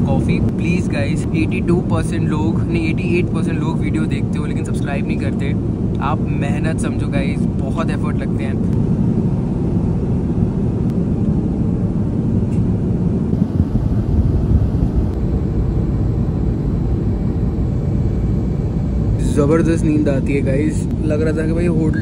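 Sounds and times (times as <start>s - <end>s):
airliner cabin engine rumble: 0.0s - 22.0s.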